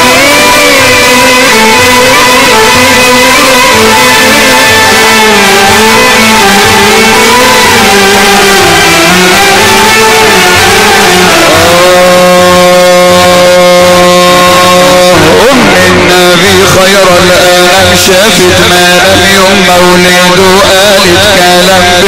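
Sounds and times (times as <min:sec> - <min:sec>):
loud amplified melodic music: 0:00.0 - 0:22.0.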